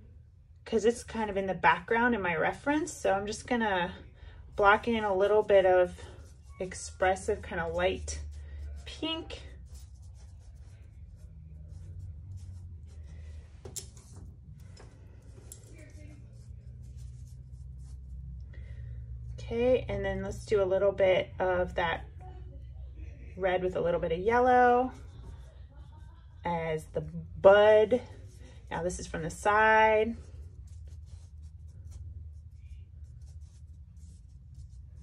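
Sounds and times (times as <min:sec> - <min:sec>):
low steady hum: 0:00.0 - 0:35.0
paintbrush scratchy strokes: 0:02.6 - 0:19.4, 0:23.8 - 0:35.0.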